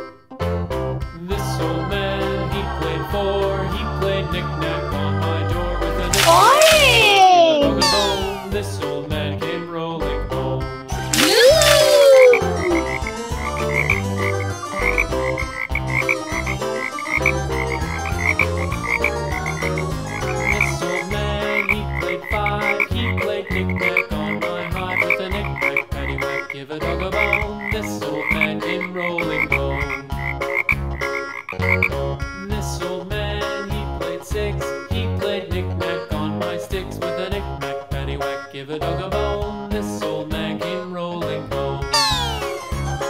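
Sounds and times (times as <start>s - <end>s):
upbeat children's music: 0.0s - 43.0s
short high blip: 6.1s - 8.6s, 10.9s - 13.1s, 42.0s - 42.6s
cartoon swooping sound effect: 6.1s - 8.7s, 10.9s - 13.9s, 42.0s - 43.0s.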